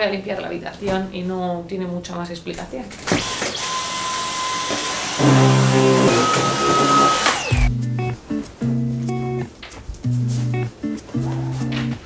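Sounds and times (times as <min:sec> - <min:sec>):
vacuum cleaner whine: 0:03.1 - 0:07.7
background music with plucked notes: 0:07.5 - 0:12.0.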